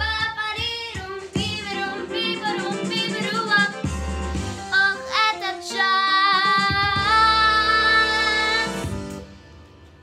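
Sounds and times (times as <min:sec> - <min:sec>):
girl singing pop vocal: 0:00.0 - 0:09.2
backing music: 0:00.0 - 0:10.0.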